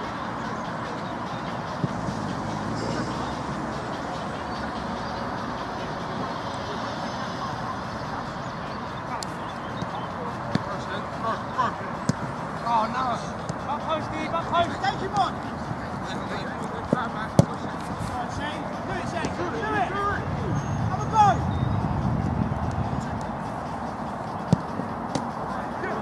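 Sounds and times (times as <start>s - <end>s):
players shouting: 9.0s - 21.7s, 22.6s - 26.0s
ball kicked thuds: 24.4s - 25.3s.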